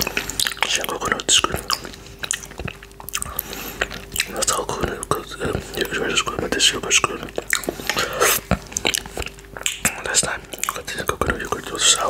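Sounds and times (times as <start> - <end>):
wet mouth licking sounds: 0.0 - 11.8
lip and tongue clicks: 0.0 - 11.9.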